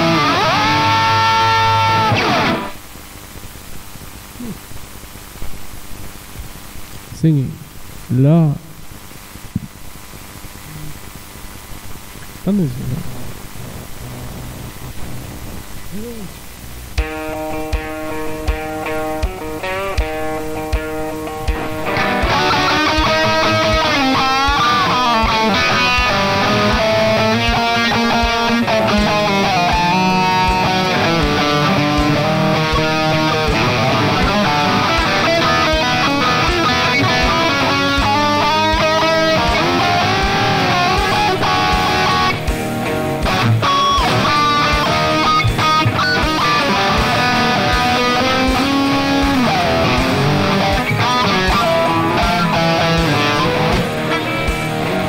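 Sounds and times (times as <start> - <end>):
electric guitar blues-rock lead: 0.0 - 5.5, 12.0 - 55.0.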